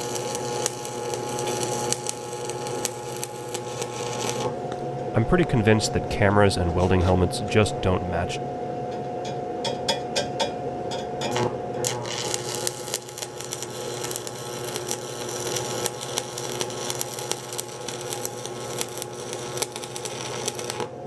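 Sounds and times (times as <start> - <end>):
welding arc crackling hiss: 0.0 - 4.7, 11.3 - 21.0
machine hum: 0.0 - 21.0.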